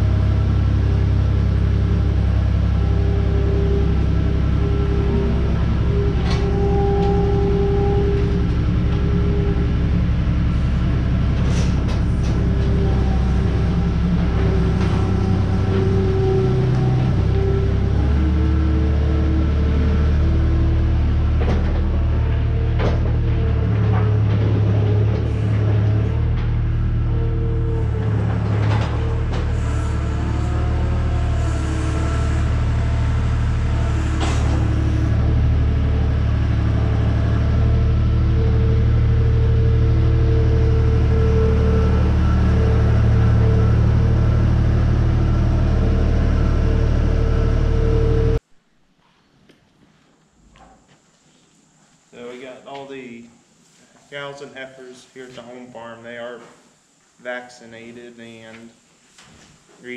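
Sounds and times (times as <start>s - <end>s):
diesel engine running: 0.0s - 48.4s
hydraulics whining: 0.0s - 48.5s.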